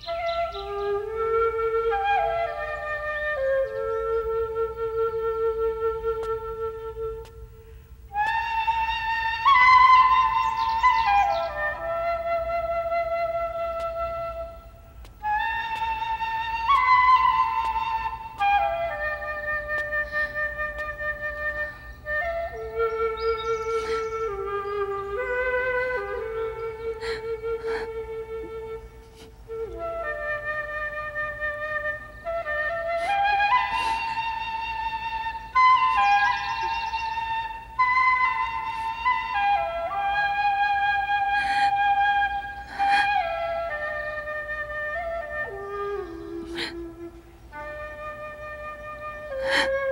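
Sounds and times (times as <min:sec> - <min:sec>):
solo flute melody: 0:00.0 - 0:49.9.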